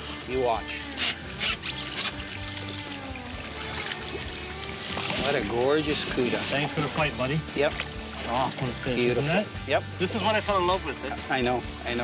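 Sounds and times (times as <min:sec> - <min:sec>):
background music: 0:00.0 - 0:12.0
water splashing: 0:00.8 - 0:09.6
light water sounds: 0:01.2 - 0:09.6.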